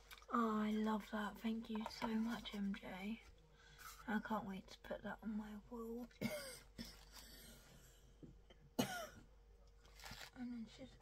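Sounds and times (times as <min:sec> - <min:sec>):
woman coughing: 0:06.2 - 0:07.2, 0:08.8 - 0:09.3.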